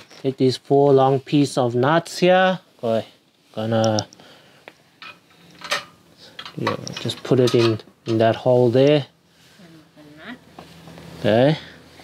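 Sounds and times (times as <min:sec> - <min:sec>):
metal bolt clicking and clinking: 0:05.0 - 0:08.2.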